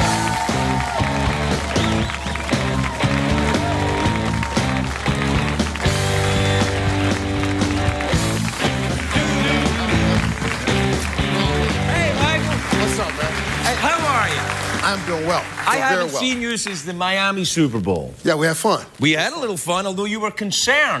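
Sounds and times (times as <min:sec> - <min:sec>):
band playing upbeat tune: 0:00.0 - 0:16.4.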